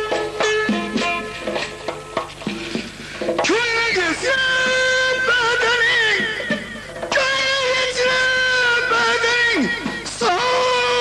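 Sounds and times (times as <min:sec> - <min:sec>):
plucked string notes: 0:00.0 - 0:03.5
frame drum jingling: 0:00.0 - 0:10.8
man singing: 0:03.4 - 0:11.0.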